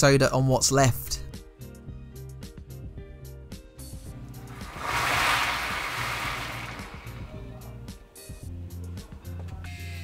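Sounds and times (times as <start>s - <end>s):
water pouring into a bowl: 4.4s - 7.5s.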